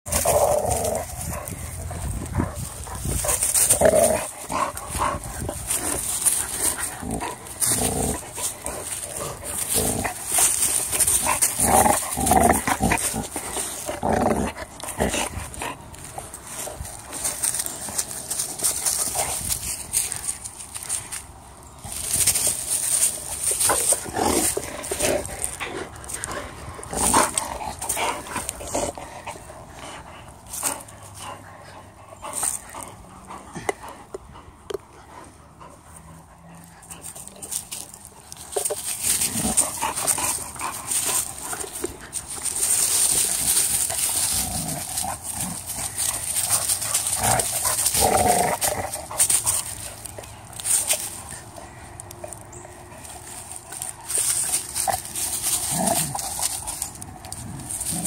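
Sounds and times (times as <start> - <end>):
dogs scuffling: 0.1 - 31.3, 36.5 - 58.0.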